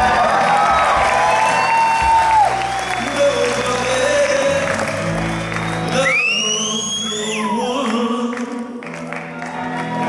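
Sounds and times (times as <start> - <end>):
audience applause and cheering: 0.0 - 10.0
live band with electric guitar: 0.0 - 10.0.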